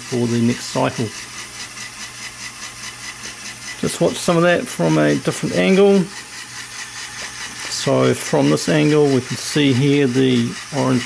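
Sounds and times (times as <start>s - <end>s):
toy electric motor ticking gears: 0.0s - 11.0s.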